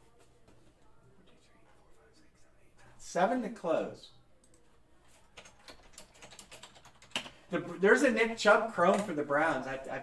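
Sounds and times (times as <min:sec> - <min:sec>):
typing on computer keyboard: 0:05.3 - 0:07.4.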